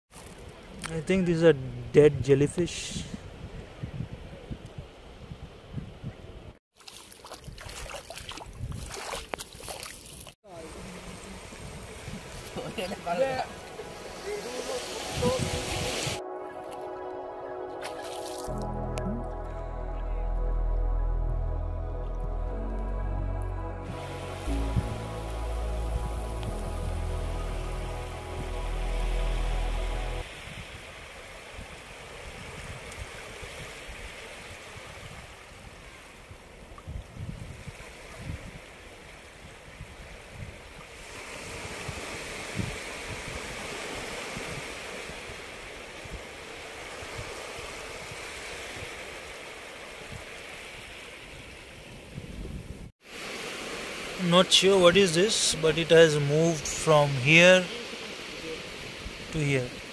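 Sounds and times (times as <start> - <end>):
wind buffeting microphone: 2.9 - 6.6, 7.4 - 9.2, 11.4 - 14.1, 36.8 - 38.7, 39.4 - 49.0, 51.8 - 52.9
small waves washing: 6.7 - 18.6, 24.0 - 52.2, 53.0 - 59.9
background music: 13.4 - 30.2.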